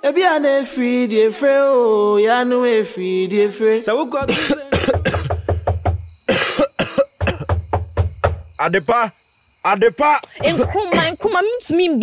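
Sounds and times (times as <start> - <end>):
person coughing hard: 4.2 - 5.6, 6.3 - 7.6, 10.4 - 11.2.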